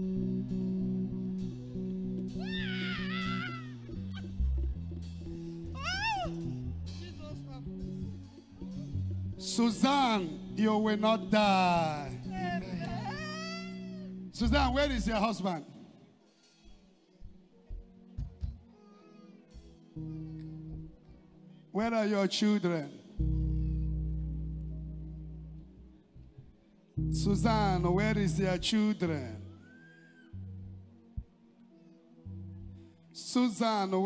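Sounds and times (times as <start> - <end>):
background music low notes: 0.0 - 34.0
woman crying wail: 2.4 - 4.4, 5.8 - 6.5, 12.2 - 14.2, 29.6 - 30.4.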